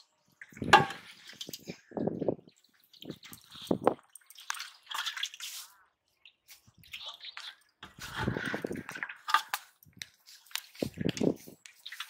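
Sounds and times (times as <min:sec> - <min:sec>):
water splashing in basin: 0:00.4 - 0:05.7, 0:06.3 - 0:09.8, 0:10.4 - 0:12.0.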